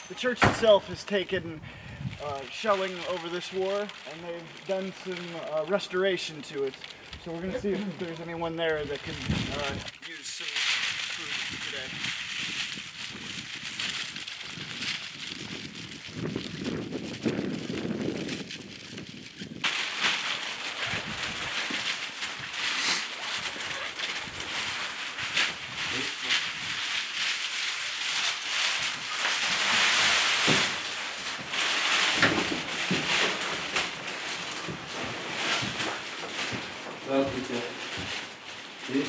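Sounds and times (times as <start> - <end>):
plastic bags crinkling: 0.0 - 39.0
footsteps: 19.6 - 39.0.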